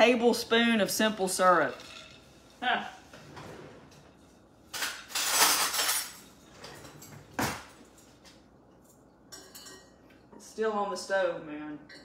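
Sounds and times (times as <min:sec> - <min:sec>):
metal kitchenware clattering: 0:01.3 - 0:02.4, 0:03.2 - 0:08.2, 0:09.3 - 0:10.0.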